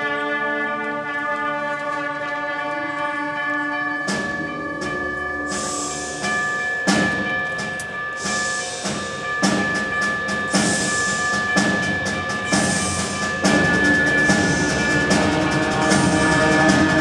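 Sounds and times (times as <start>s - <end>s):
concert band playing: 0.0s - 17.0s
percussion hits: 4.0s - 17.0s.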